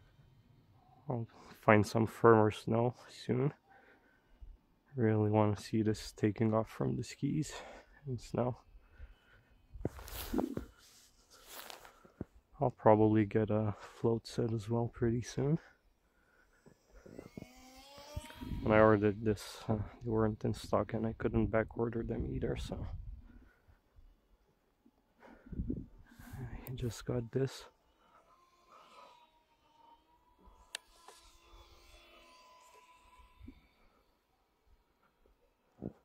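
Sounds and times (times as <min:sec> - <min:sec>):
model plane electric motors whine: 0:00.0 - 0:01.6, 0:06.0 - 0:12.2, 0:14.6 - 0:36.0.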